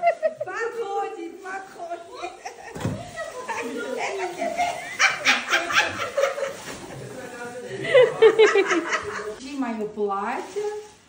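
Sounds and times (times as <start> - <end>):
plastic bag crinkling: 0.0 - 9.3, 10.0 - 11.0.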